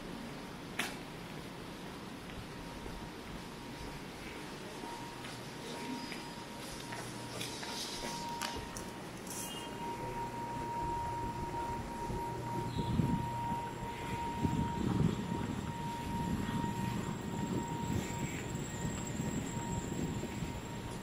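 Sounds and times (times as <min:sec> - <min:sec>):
high-pitched hum: 0:02.7 - 0:21.0.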